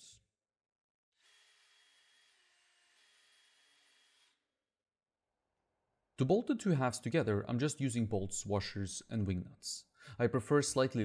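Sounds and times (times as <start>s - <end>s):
power drill whine: 1.2s - 4.4s.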